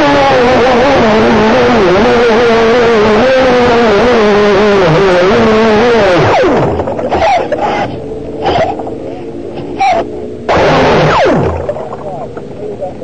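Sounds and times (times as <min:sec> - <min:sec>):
electric motor whining: 0:00.0 - 0:12.5.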